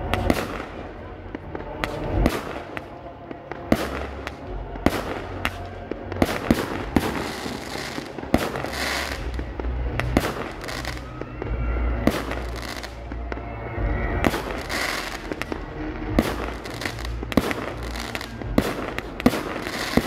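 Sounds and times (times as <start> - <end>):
fireworks bursting: 0.0 - 20.0
low rumble: 0.0 - 20.0.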